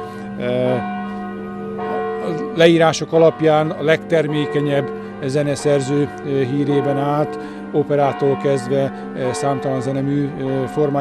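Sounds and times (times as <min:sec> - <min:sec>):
church bell ringing: 0:00.0 - 0:11.0.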